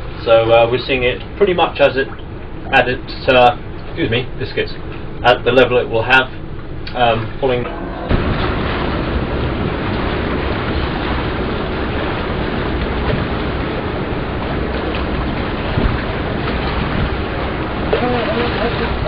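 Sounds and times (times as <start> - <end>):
low rumble of ship: 0.0 - 19.0
wind rushing on microphone: 7.0 - 19.0.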